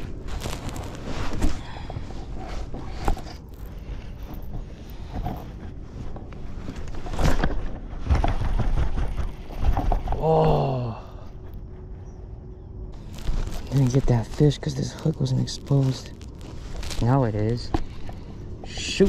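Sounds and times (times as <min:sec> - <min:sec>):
knocks and rustles of gear: 0:00.0 - 0:10.3, 0:13.0 - 0:14.4.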